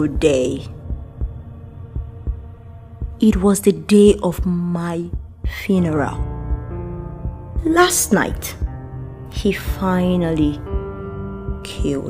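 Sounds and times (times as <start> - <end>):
heartbeat-like low thumps: 0.0 - 12.0
soft background music: 0.0 - 12.0
sustained low drone: 0.0 - 12.0.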